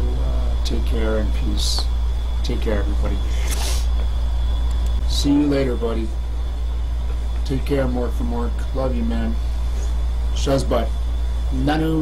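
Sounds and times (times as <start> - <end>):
steady low hum: 0.0 - 12.0
short hiss: 3.2 - 4.0.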